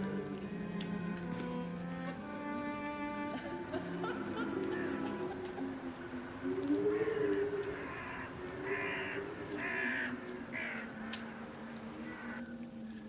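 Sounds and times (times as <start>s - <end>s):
low music drone: 0.0s - 13.0s
crow cawing: 6.9s - 12.5s.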